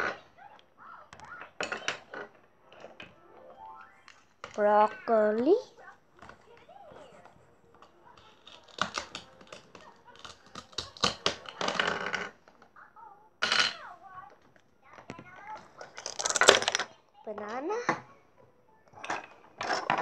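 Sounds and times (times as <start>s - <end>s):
plastic toy knife scraping: 8.2s - 12.4s.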